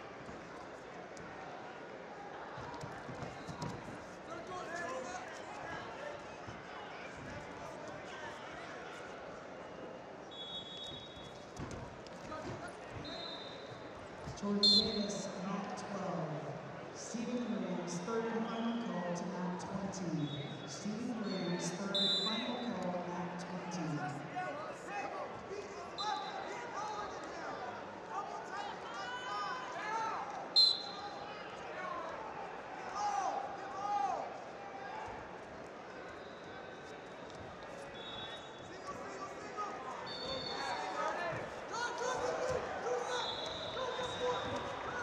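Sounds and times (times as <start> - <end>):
arena crowd din: 0.0 - 45.0
referee's whistle blast: 10.3 - 11.2, 13.0 - 13.7, 14.6 - 15.2, 20.2 - 22.6, 30.6 - 31.1, 38.0 - 38.6, 40.0 - 40.8, 43.1 - 44.7.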